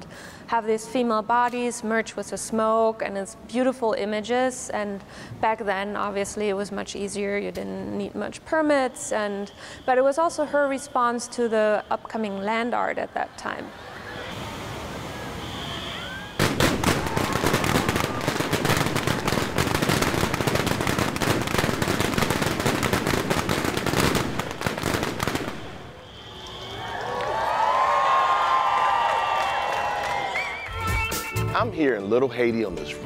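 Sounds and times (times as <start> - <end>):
fireworks crackling and popping: 16.4 - 26.0.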